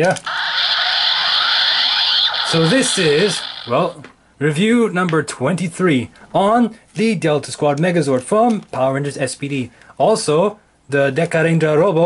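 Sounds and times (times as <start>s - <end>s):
toy electronic hissing sound: 0.2s - 4.0s.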